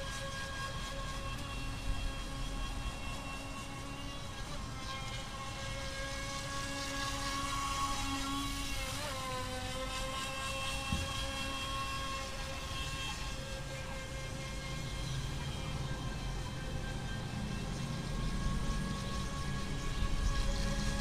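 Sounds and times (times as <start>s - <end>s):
electric motor high whine: 0.0s - 21.0s.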